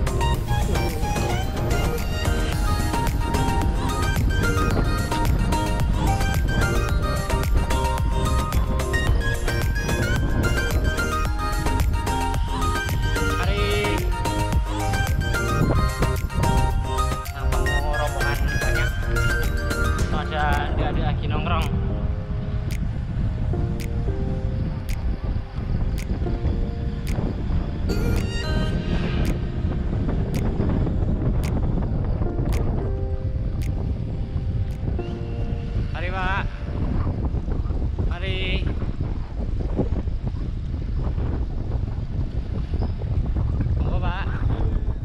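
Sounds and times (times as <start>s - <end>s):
background music with melody: 0.0s - 36.9s
wind buffeting microphone: 0.0s - 45.0s
steady tick: 26.0s - 26.2s, 30.3s - 30.5s, 31.4s - 31.6s.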